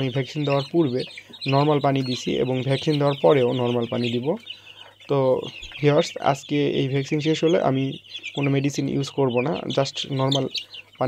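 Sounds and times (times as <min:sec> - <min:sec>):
chicks peeping: 0:00.0 - 0:11.0
man talking: 0:00.0 - 0:11.0.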